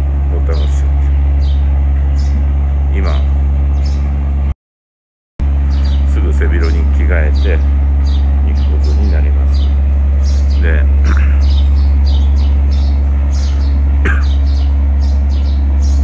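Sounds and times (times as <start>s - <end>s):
birds chirping: 0.0s - 4.5s, 5.4s - 16.0s
loud steady low hum: 0.0s - 4.6s, 5.4s - 16.0s.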